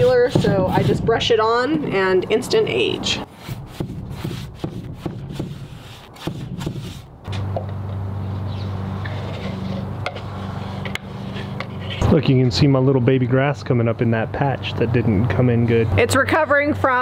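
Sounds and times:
paintbrush scratching over wood: 0.0s - 1.4s, 3.3s - 7.1s, 8.9s - 12.0s
steady low hum: 0.0s - 16.9s.

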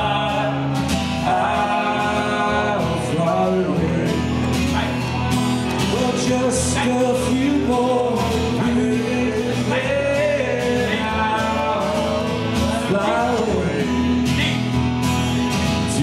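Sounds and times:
man singing into microphone: 0.0s - 4.8s, 5.8s - 14.6s
acoustic guitar strumming: 0.0s - 16.0s.

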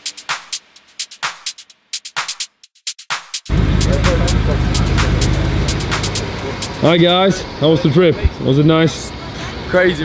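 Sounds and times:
car engine idling: 3.5s - 7.6s
faint voices: 3.5s - 9.8s.

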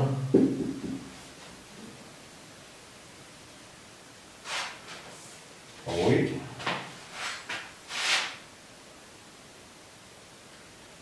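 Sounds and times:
marker scratching on whiteboard: 7.1s - 8.4s.

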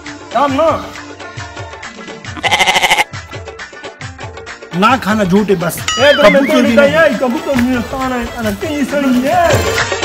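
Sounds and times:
background music with steady beat: 0.0s - 10.0s
loud short bleat: 2.3s - 3.2s.

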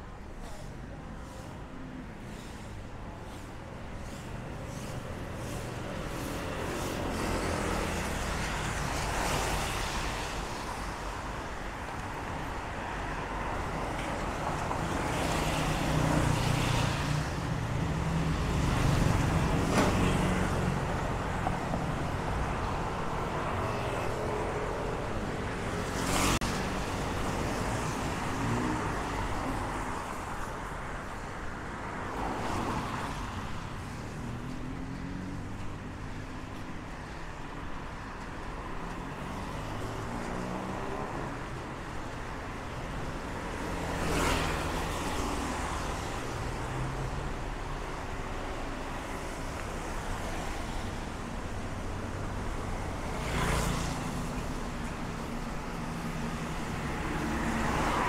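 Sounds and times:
road traffic passing: 0.0s - 58.0s.

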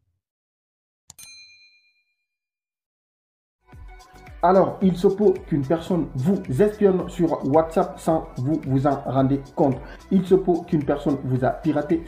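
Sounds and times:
notification bell ding: 1.1s - 2.0s.

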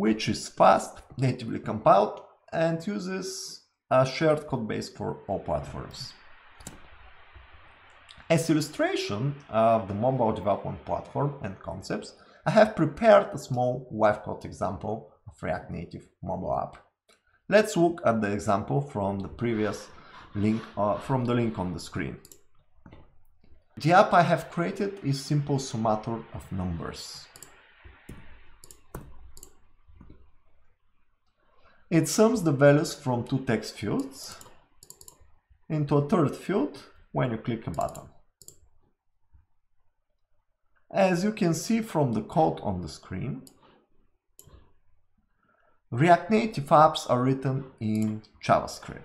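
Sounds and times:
mouse clicks: 6.6s - 6.9s, 22.2s - 23.1s, 27.2s - 30.4s, 34.0s - 35.3s, 37.7s - 38.6s, 44.4s - 44.7s
keyboard keystrokes: 28.1s - 29.6s.

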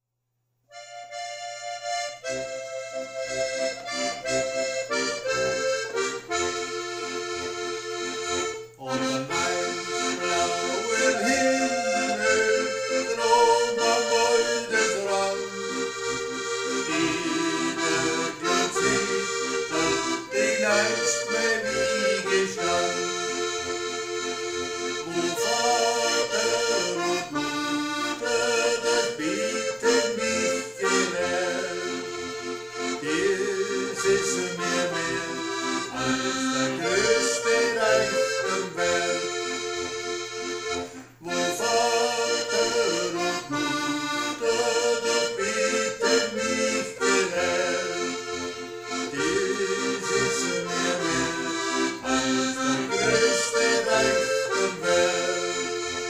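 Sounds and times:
button accordion folk tune: 0.7s - 56.0s.

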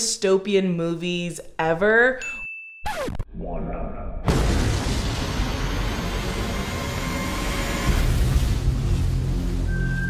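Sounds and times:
low rumble: 3.4s - 10.0s
loud rushing noise: 4.3s - 9.8s.

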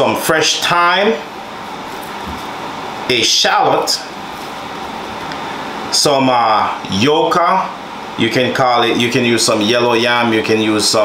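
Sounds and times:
room noise hiss and hum: 0.0s - 11.0s.

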